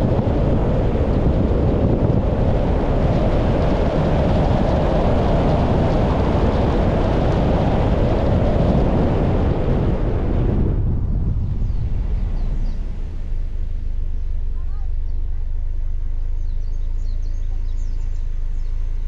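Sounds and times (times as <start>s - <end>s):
wind buffeting microphone: 0.0s - 18.9s
car road noise: 0.0s - 19.0s.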